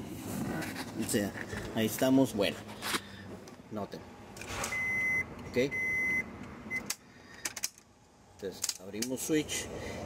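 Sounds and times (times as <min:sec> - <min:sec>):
high electronic beep: 0:04.7 - 0:06.8.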